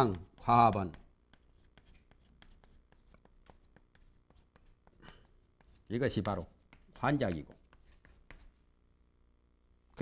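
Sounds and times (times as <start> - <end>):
chalk tapping and scraping: 0.0 - 8.7.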